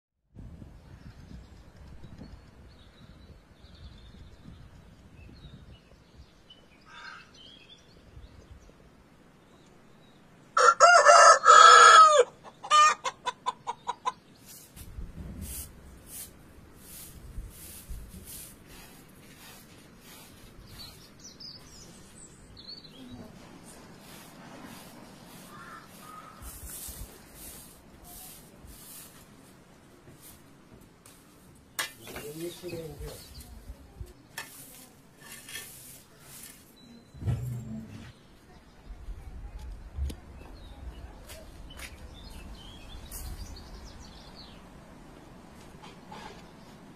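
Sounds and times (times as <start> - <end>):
rooster crowing: 10.6 - 13.0
chickens clucking: 12.4 - 14.8
broom sweeping floor: 14.4 - 22.2, 23.4 - 38.2, 43.0 - 43.5
low-pitched hum: 37.0 - 38.2.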